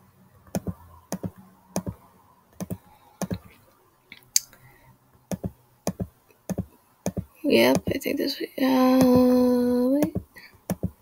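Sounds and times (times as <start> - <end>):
computer mouse clicking: 0.5 - 2.0, 2.6 - 3.5, 5.3 - 8.0.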